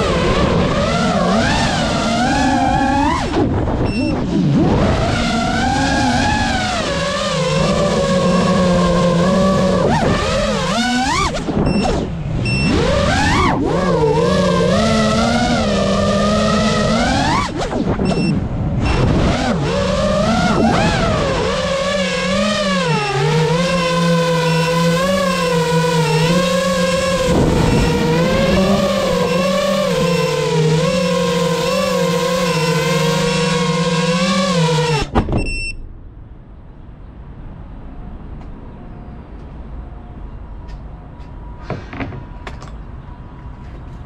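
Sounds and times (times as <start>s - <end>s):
quadcopter motors whining: 0.0s - 35.1s.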